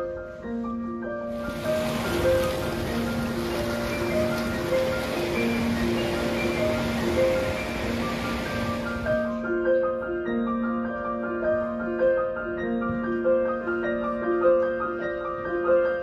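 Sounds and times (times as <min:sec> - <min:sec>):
gentle background music: 0:00.0 - 0:16.0
ocean surf washing over rocks: 0:01.4 - 0:09.3.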